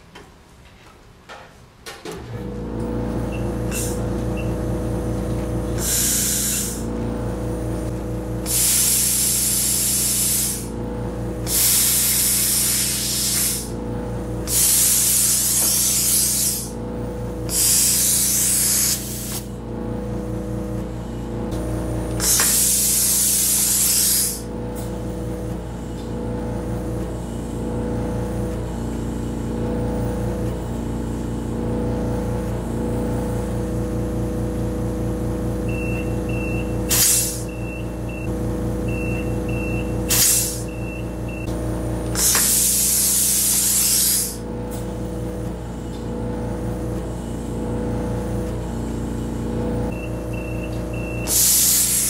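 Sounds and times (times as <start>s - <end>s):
electric compressor humming: 2.2s - 52.0s
compressed air hissing from hose: 5.8s - 6.9s, 8.4s - 10.7s, 11.5s - 13.8s, 14.4s - 16.8s, 17.5s - 19.5s, 22.2s - 24.5s, 36.9s - 37.5s, 40.1s - 40.7s, 42.1s - 44.4s, 51.2s - 52.0s.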